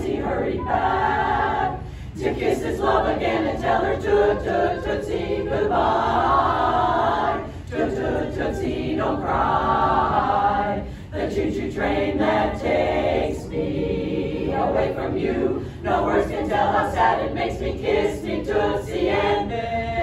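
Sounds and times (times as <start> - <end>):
women's chorus singing a cappella: 0.0 - 20.0.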